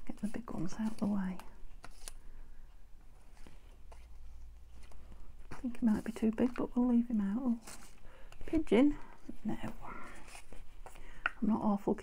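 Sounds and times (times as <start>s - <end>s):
paper rustling: 0.1s - 2.3s, 3.2s - 11.1s.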